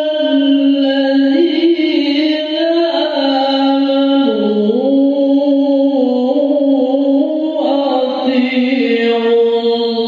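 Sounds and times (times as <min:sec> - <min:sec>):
person chanting through a microphone: 0:00.0 - 0:10.0.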